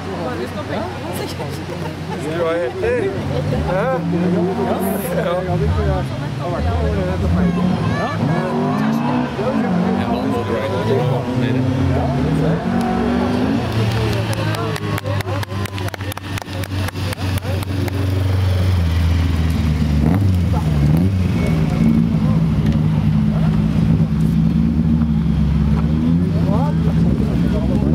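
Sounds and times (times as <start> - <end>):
racing car engines revving: 0.0 - 27.9.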